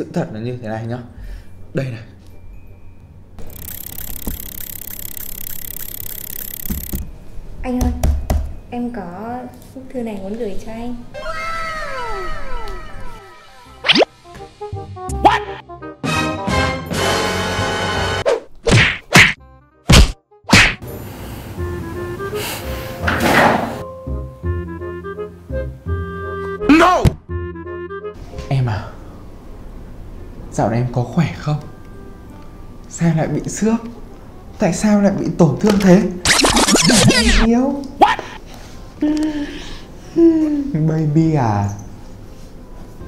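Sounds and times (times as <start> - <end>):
light tinkling melody: 1.2 - 7.6
even ticking: 3.4 - 7.0
loud whacks on head: 18.6 - 20.8.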